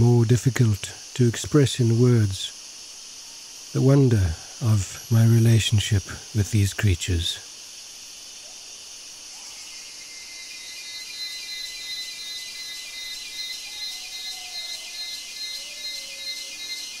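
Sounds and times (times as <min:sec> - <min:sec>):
insect chorus drone: 0:00.0 - 0:17.0.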